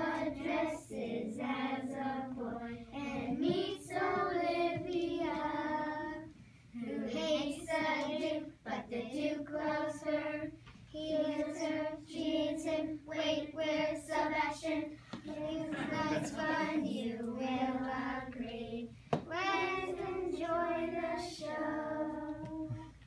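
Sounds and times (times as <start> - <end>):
children singing together: 0.0 - 23.0.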